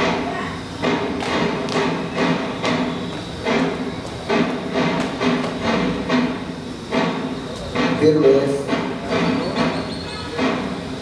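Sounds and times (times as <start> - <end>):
drum beating march rhythm: 0.8 - 11.0.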